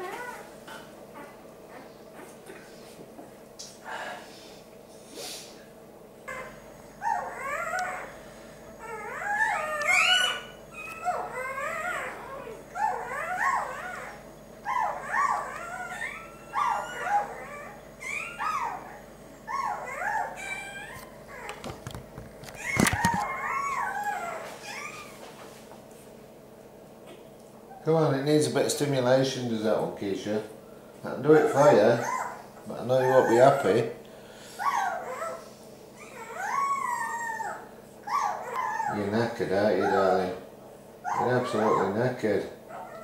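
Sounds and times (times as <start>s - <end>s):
puppy crying: 0.0s - 2.4s, 6.2s - 8.2s, 8.8s - 21.7s, 22.5s - 25.2s, 31.2s - 34.0s, 34.6s - 40.4s, 41.0s - 43.0s.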